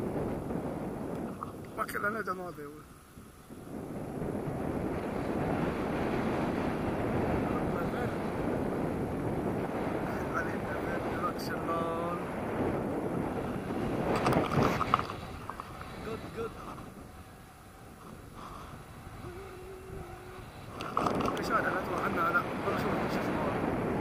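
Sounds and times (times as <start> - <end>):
wind buffeting microphone: 0.0 - 24.0
faint voice: 19.2 - 20.5.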